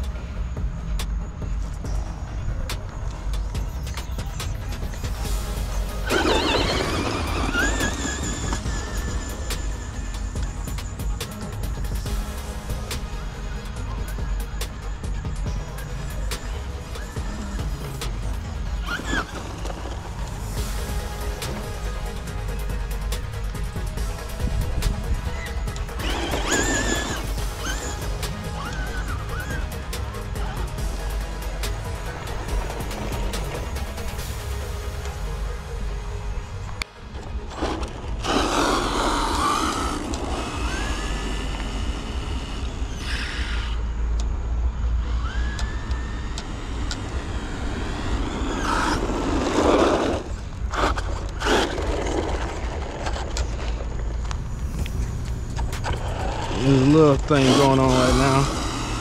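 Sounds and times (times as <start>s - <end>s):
background music: 0.0s - 59.0s.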